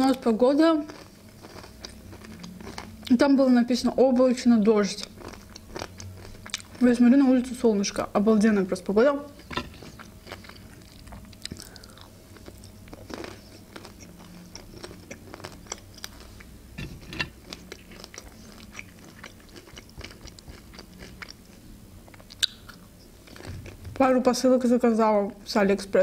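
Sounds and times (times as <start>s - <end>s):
chewing and biting food: 0.0s - 3.1s, 4.2s - 6.9s, 9.4s - 24.0s.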